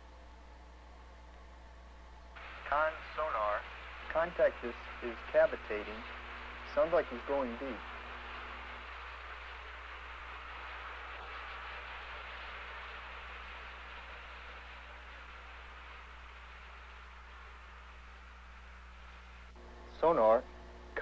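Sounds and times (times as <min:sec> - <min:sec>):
low steady hum: 0:00.0 - 0:21.0
sonar rushing hiss: 0:02.4 - 0:19.6.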